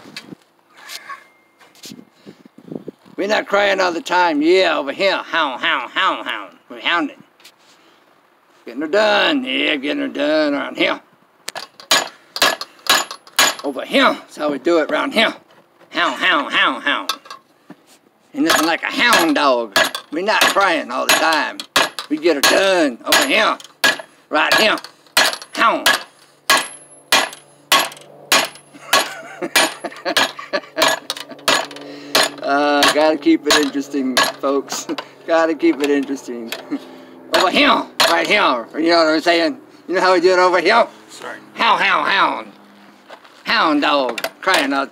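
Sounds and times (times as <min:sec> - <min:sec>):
hammer striking copper tube: 0:18.5 - 0:34.4.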